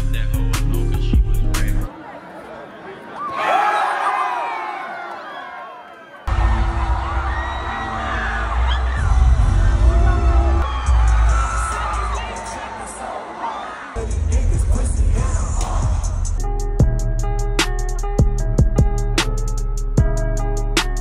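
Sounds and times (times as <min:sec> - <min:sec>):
hip-hop music with heavy bass: 0:00.0 - 0:01.9, 0:06.4 - 0:21.0
crowd shouting and screaming: 0:01.9 - 0:14.2.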